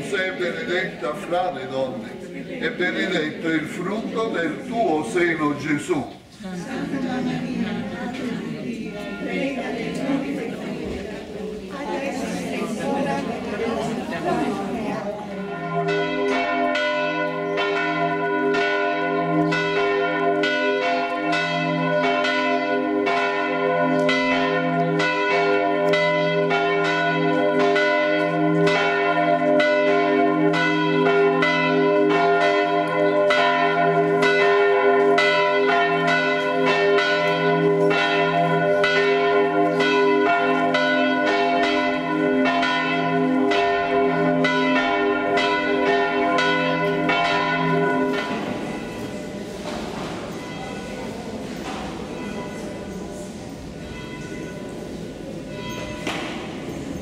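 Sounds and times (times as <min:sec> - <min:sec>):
church bells pealing: 0:00.0 - 0:06.0, 0:06.6 - 0:57.0.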